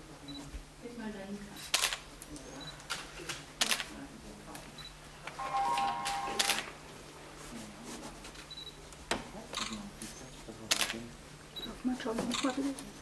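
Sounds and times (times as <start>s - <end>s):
brief steady tone: 5.4s - 6.7s
camera shutters clicking: 10.7s - 11.0s.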